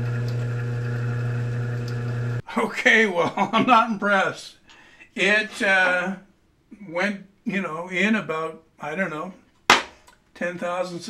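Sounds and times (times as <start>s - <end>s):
drill press motor humming: 0.0s - 2.4s.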